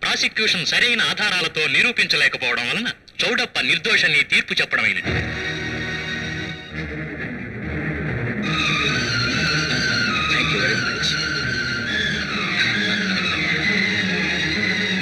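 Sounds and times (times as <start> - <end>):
high wailing sliding tones: 8.2 - 15.0.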